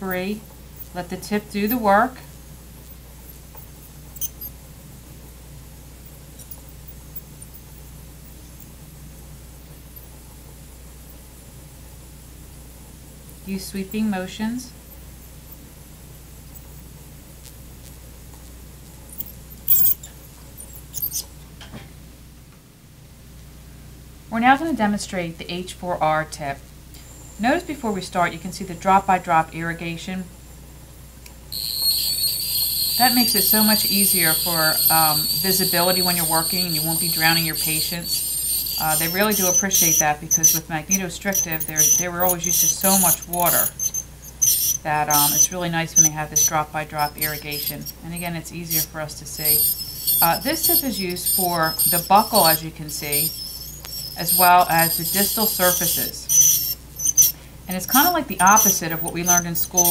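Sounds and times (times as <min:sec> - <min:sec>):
dental scaler high-pitched whine: 0:00.0 - 0:04.6, 0:06.0 - 0:10.1, 0:13.5 - 0:18.0, 0:19.0 - 0:21.3, 0:27.0 - 0:30.4, 0:31.5 - 0:59.9
steady low hum: 0:00.0 - 0:59.9
high squeaks and chirps: 0:03.3 - 0:04.5, 0:19.1 - 0:21.3, 0:31.5 - 0:59.9.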